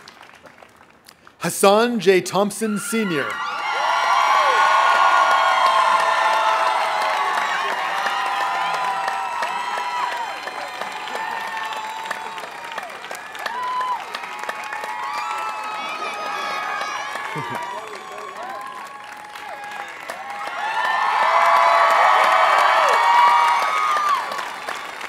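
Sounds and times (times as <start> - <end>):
crowd cheering and applauding: 0.0 - 25.0.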